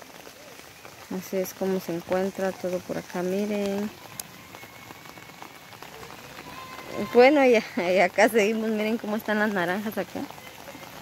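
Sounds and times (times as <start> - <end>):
rain falling on foliage: 0.0 - 11.0.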